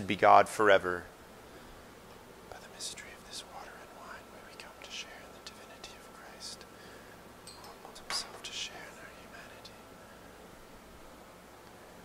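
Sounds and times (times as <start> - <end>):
low room hum: 0.0 - 12.0
man whispering a prayer: 2.5 - 6.8, 7.8 - 9.9.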